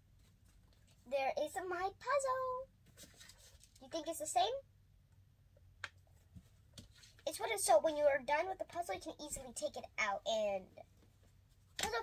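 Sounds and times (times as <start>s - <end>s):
girl speaking: 1.1s - 2.7s, 3.8s - 4.7s, 7.3s - 10.8s, 11.8s - 12.0s.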